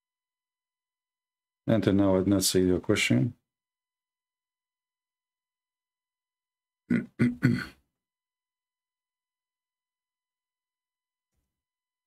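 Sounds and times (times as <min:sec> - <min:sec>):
man clearing his throat: 0:06.9 - 0:07.9.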